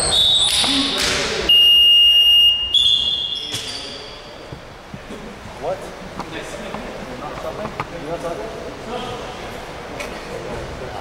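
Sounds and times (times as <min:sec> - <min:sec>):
referee's whistle blast: 0:01.5 - 0:04.3
sneaker squeaks on gym floor: 0:02.8 - 0:04.6.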